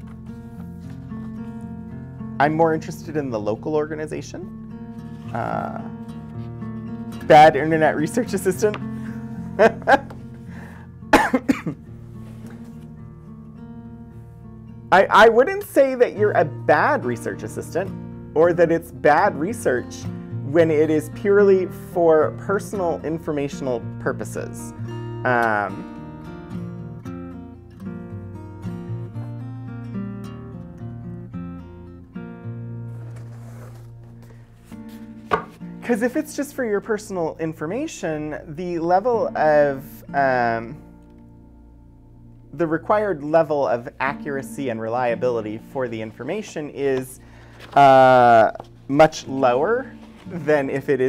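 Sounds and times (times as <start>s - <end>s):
soft acoustic guitar music: 0.0s - 51.0s
man laughing: 9.6s - 10.2s, 11.1s - 11.8s.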